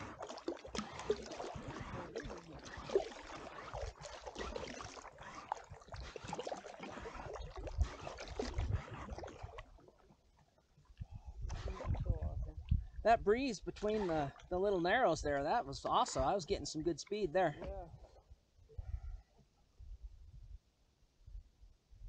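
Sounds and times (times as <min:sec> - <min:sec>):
water splashing against a boat hull: 0:00.0 - 0:18.2
wind rumble on microphone: 0:07.0 - 0:09.6, 0:11.0 - 0:14.0, 0:17.6 - 0:20.6.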